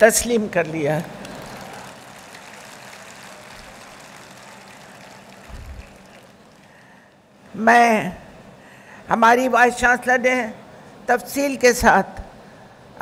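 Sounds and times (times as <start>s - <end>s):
large hall background noise: 0.0s - 13.0s
faint steady hum: 0.9s - 9.2s.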